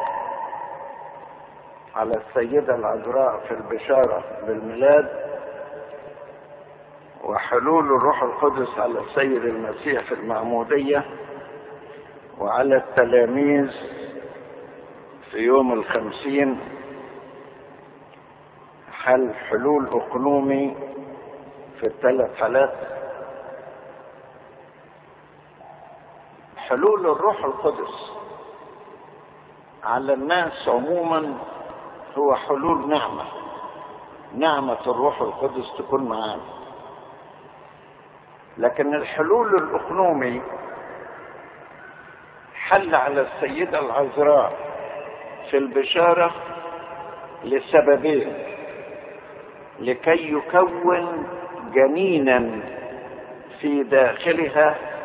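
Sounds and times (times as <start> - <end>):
faint low hum: 0.0 - 55.0
recording hiss: 0.0 - 55.0.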